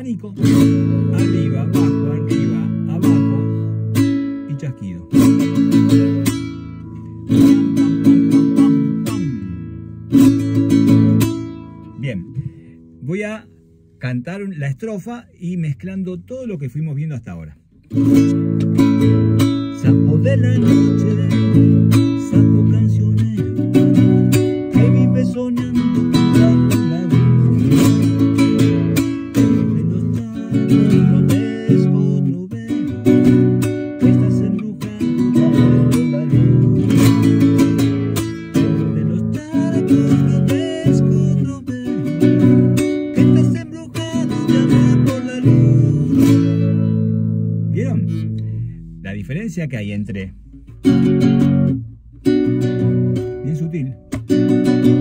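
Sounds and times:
classical guitar strumming: 0.0s - 14.6s, 17.6s - 55.0s.

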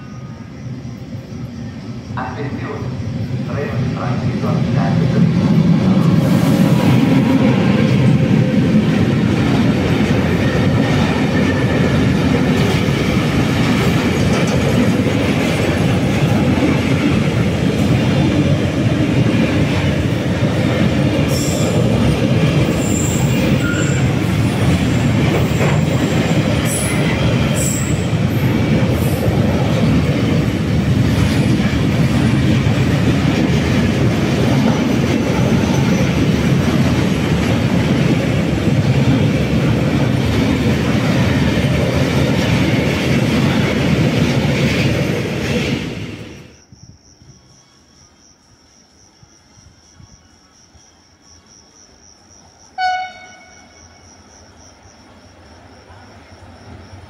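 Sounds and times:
train wheels rumbling on rails: 0.0s - 47.7s
high-pitched wheel squeals: 22.8s - 24.1s.

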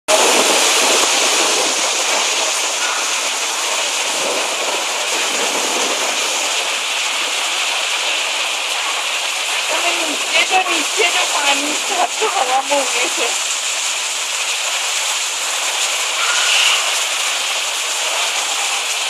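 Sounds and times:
heavy rain pouring: 0.1s - 19.0s.

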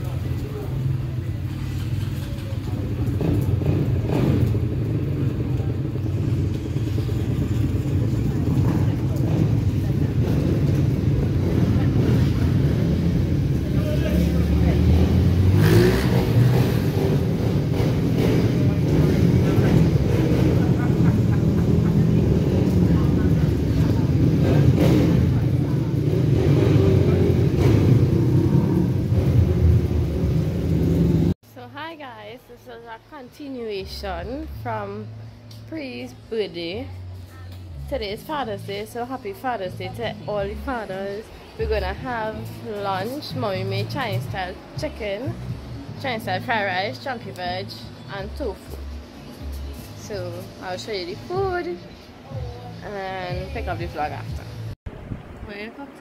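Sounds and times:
motorcycle engines running: 0.0s - 31.4s
traffic rumble: 0.0s - 56.0s
engine revving: 1.4s - 31.4s.

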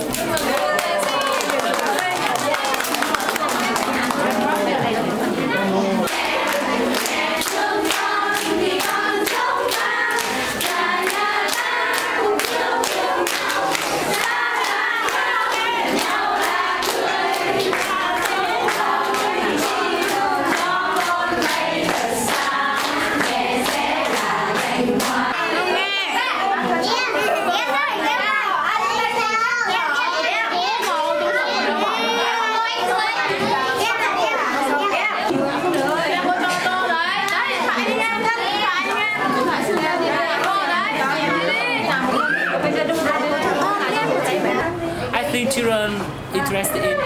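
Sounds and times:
group of voices singing: 0.0s - 27.6s, 30.0s - 45.2s.

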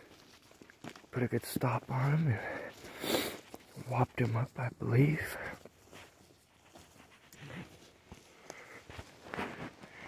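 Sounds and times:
footsteps through dry grass: 0.0s - 10.0s.

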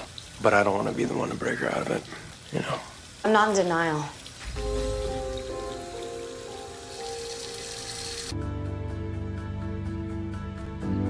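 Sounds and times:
steady hiss: 0.0s - 8.3s.

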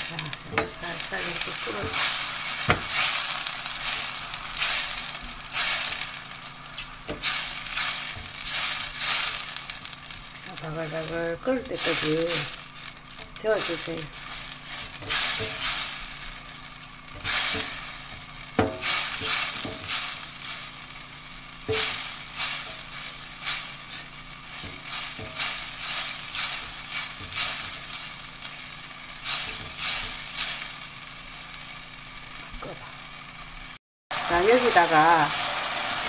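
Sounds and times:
spatula scraping a pan: 0.0s - 10.2s, 10.9s - 16.4s, 17.0s - 20.7s, 21.7s - 28.5s, 29.2s - 30.8s
sauce sizzling: 0.0s - 36.0s.

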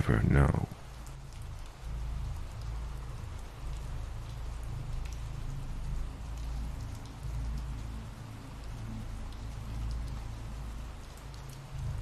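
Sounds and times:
steady rainfall: 0.0s - 12.0s.

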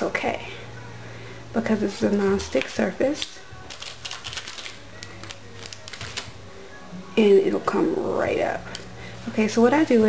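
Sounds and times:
low steady hum: 0.0s - 10.0s
plastic packaging crinkling: 3.7s - 6.3s.

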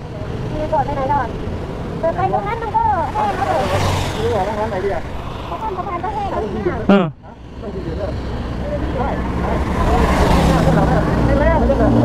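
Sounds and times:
vehicle passing on wet road: 0.9s - 12.0s.

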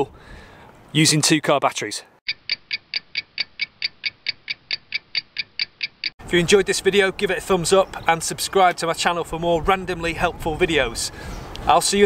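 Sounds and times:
clock ticking quickly: 2.3s - 6.1s.

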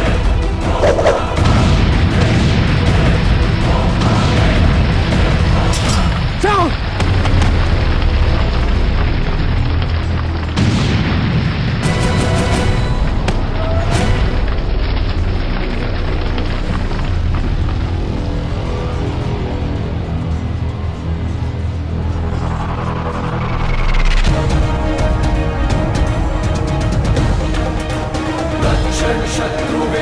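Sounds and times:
dramatic background score: 0.0s - 30.0s.

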